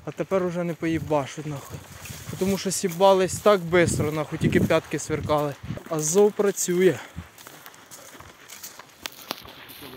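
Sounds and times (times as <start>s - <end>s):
footsteps on leaf litter: 0.0s - 9.9s.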